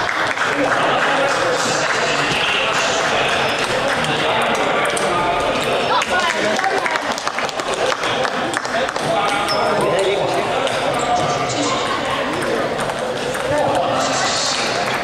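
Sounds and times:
hubbub of voices: 0.0 - 15.0
table tennis balls clicking: 12.0 - 13.9.

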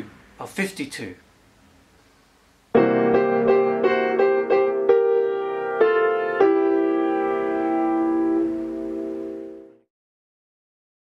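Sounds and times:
piano chord ringing: 2.7 - 9.9.

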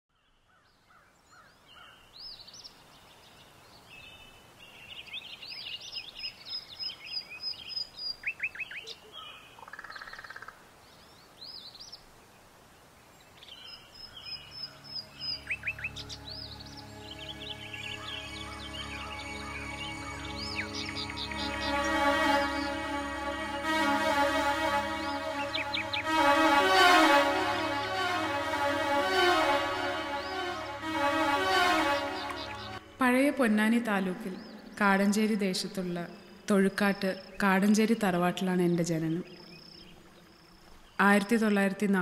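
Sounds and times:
faint background hiss: 0.2 - 42.0
birds chirping and singing: 14.0 - 22.8, 25.4 - 26.1
soft music with long held tones: 14.2 - 36.5.

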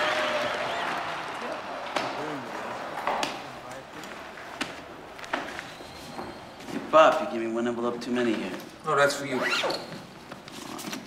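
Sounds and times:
background murmur: 0.0 - 8.7.

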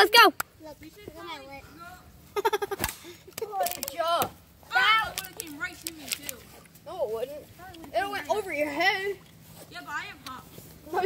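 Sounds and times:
child laughing: 2.3 - 3.8.

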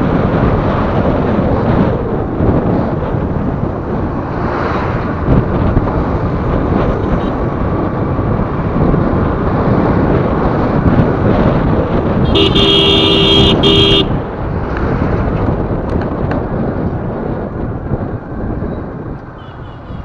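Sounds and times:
vehicle road noise on highway: 0.0 - 20.0
vehicle horn blast: 12.2 - 14.2, 19.4 - 20.0.

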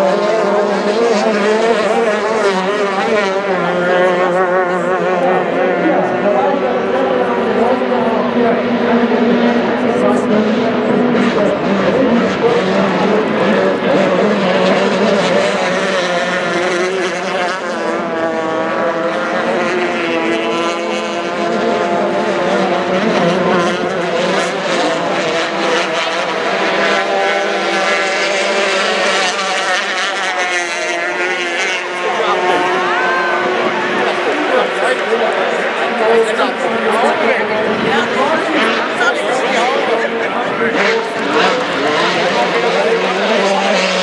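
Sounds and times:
racing boat engines at high revs: 0.0 - 44.0.

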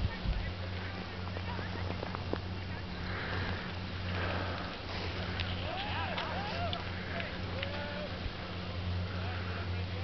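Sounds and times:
breathing close to microphone: 2.9 - 5.6.

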